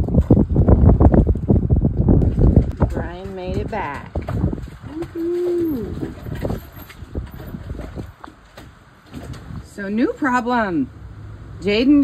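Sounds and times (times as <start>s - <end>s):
wind buffeting microphone: 0.0s - 10.7s
choppy water: 0.0s - 12.0s.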